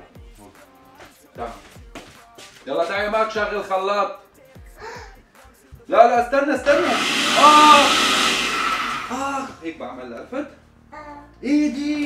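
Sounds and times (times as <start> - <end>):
electric blender whirring: 6.7 - 9.6.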